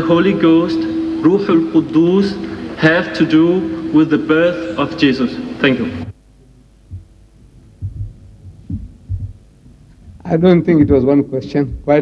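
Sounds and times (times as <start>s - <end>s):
faint steady hum: 0.0s - 12.0s
soft dull low thumps: 6.1s - 12.0s.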